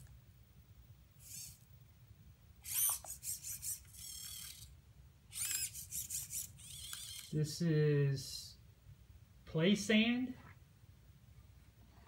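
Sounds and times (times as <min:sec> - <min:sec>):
servo motors whining: 0:01.2 - 0:01.6, 0:02.6 - 0:04.7, 0:05.3 - 0:07.4.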